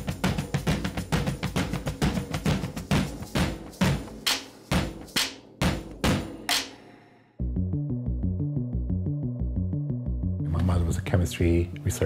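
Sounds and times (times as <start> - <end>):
music with heavy percussive hits: 0.0 - 7.1.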